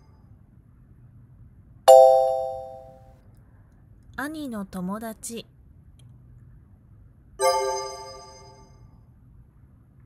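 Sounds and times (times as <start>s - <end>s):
bright chime: 1.9s - 2.9s.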